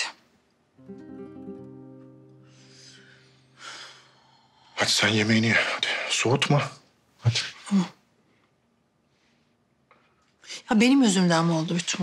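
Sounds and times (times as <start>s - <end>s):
acoustic guitar chord strummed: 0.8s - 4.1s.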